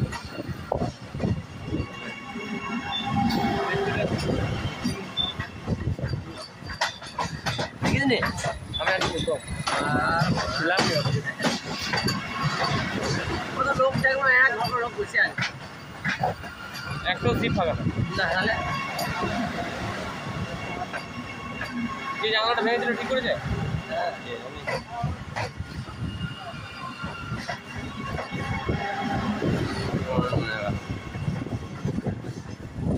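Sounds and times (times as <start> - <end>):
train wheels rumbling on track: 0.0 - 32.9.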